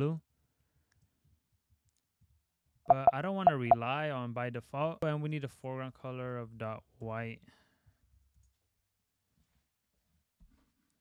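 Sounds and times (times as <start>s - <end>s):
person speaking: 2.9s - 4.1s.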